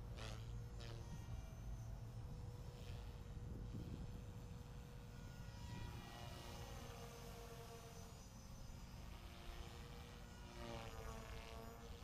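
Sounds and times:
rc helicopter whine: 0.0 - 12.0.

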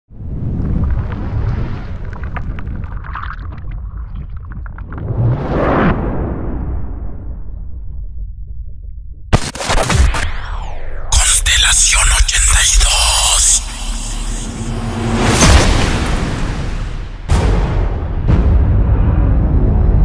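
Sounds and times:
deep rumble: 0.2 - 9.3
sharp hit: 9.4 - 18.8
rising whoosh: 10.1 - 11.2, 13.3 - 17.3.

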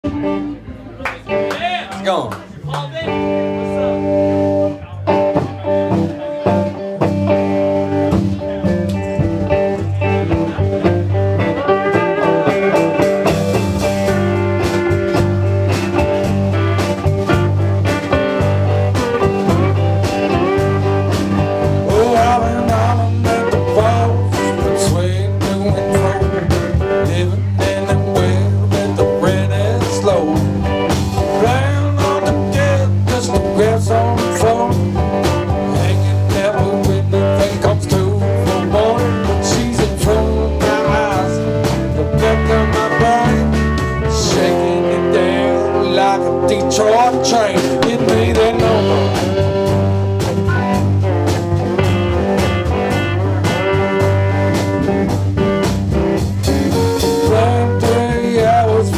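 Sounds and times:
blues band playing: 0.0 - 58.9
lap steel slide guitar: 3.1 - 58.9.

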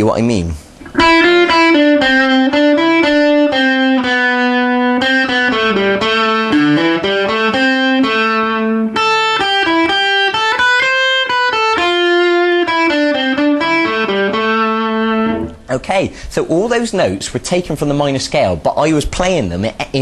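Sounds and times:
electric guitar lead line: 0.8 - 15.7.

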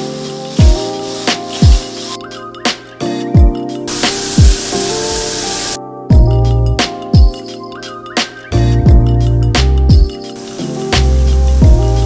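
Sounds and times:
shower water spraying: 0.0 - 2.2, 3.9 - 5.8, 10.0 - 12.0
background music with kick drum: 0.0 - 12.0.

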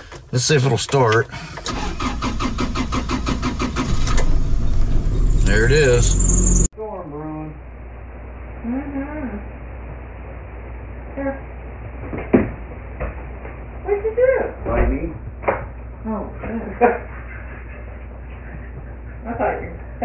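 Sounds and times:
indistinct voice: 5.4 - 7.7.

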